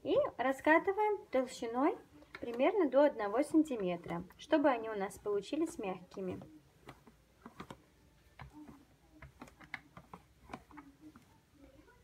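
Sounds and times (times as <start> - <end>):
rolling pin clicking on dough: 2.3 - 11.4.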